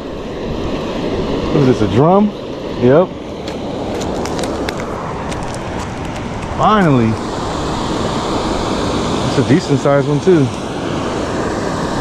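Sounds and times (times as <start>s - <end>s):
small waterfall rushing: 2.8s - 12.0s.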